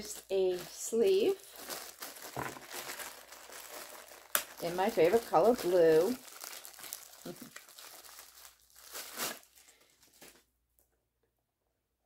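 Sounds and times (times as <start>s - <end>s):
plastic wrapping crinkling: 0.0s - 10.5s.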